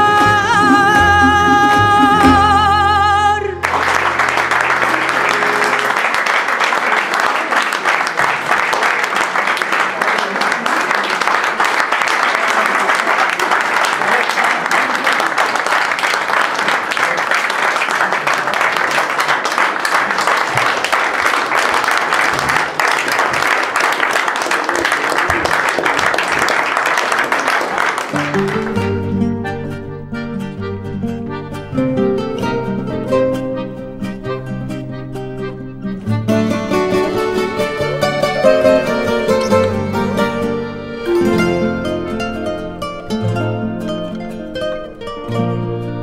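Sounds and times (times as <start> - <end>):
audience applauding: 3.6 - 29.1, 37.0 - 40.5.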